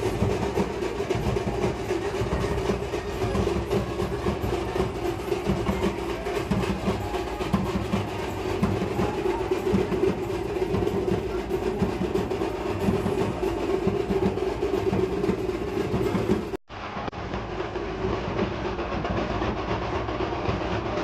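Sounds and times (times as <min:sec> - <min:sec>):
rhythmic drumming: 0:00.0 - 0:21.0.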